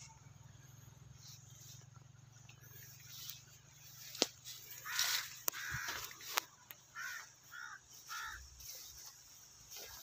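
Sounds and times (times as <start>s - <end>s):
crow cawing: 4.7s - 8.5s.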